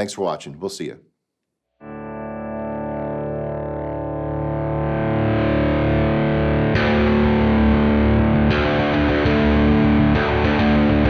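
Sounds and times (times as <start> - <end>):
electric guitar chord ringing: 1.8 - 11.0.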